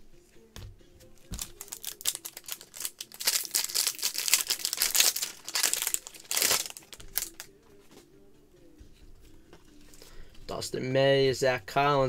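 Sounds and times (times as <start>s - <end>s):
foil wrapper crinkling and tearing: 1.3s - 7.5s.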